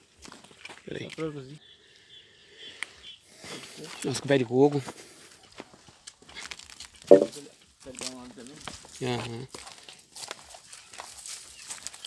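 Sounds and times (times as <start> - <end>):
footsteps: 7.1 - 7.3
person speaking: 7.1 - 7.3.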